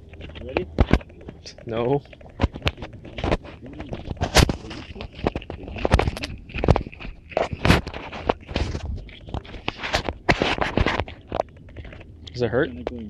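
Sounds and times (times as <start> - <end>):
footsteps on trail steps: 0.0 - 11.5
camera handling rubbing: 0.0 - 12.0.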